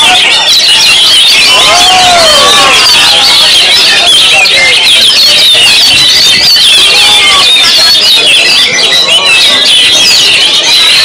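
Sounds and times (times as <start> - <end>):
birds singing whistles and trills: 0.0 - 11.0.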